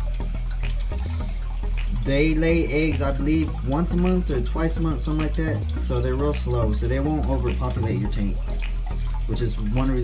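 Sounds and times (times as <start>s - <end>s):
aquarium water trickling: 0.0s - 10.0s.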